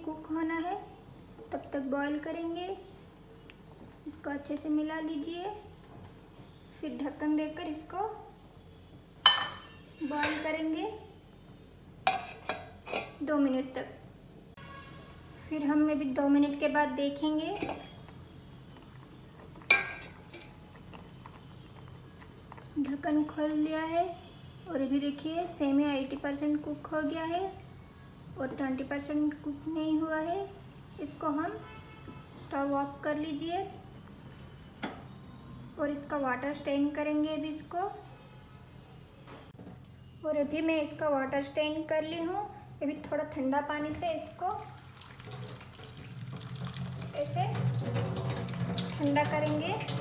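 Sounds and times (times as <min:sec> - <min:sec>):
faint steady background noise: 0:00.0 - 0:50.0
utensil clinking on steel pot: 0:09.3 - 0:10.6, 0:12.1 - 0:13.2, 0:19.7 - 0:20.6, 0:44.1 - 0:45.3
tap water splashing into sink: 0:44.4 - 0:50.0.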